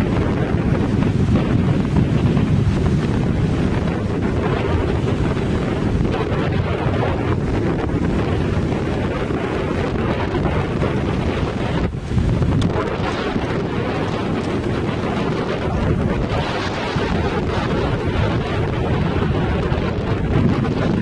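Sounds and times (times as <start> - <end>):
waves washing on sandy shore: 0.0 - 21.0
wind buffeting microphone: 0.0 - 21.0.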